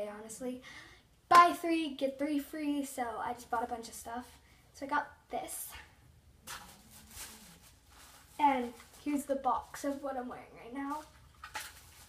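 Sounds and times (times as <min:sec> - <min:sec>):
handling rustle: 0:06.5 - 0:12.0.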